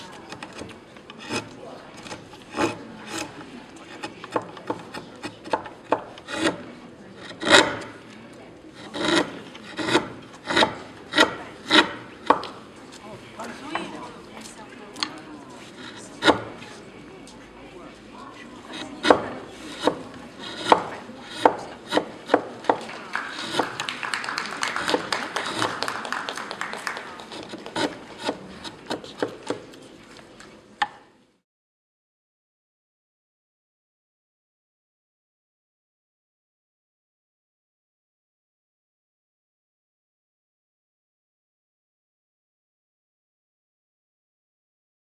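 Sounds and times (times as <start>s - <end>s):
chisel scraping wood: 0.0s - 16.8s, 18.4s - 23.9s, 24.7s - 31.0s.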